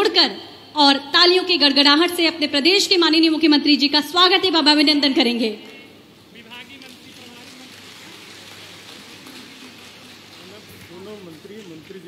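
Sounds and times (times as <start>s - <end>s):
crowd applauding: 6.4s - 12.0s.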